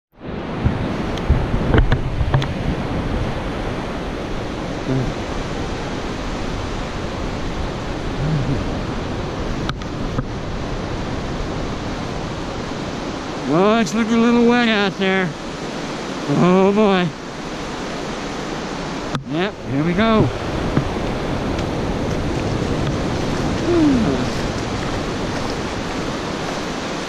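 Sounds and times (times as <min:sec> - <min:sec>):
wind buffeting microphone: 0:00.2 - 0:14.5, 0:17.2 - 0:27.0
ocean surf: 0:00.2 - 0:27.0.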